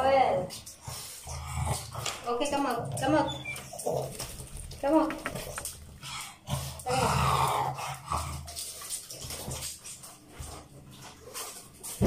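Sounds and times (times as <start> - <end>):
water dripping and splashing: 1.8 - 12.0.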